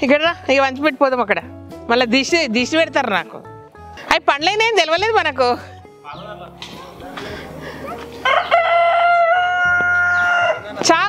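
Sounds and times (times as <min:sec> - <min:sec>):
rooster crowing: 0:08.2 - 0:10.8.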